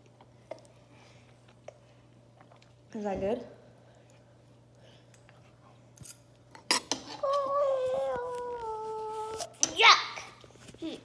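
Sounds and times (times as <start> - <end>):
child humming: 7.2 - 9.6.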